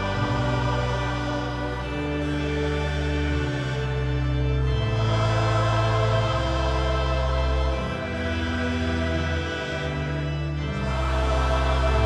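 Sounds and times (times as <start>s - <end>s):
church hymn with slow held chords: 0.0s - 12.0s.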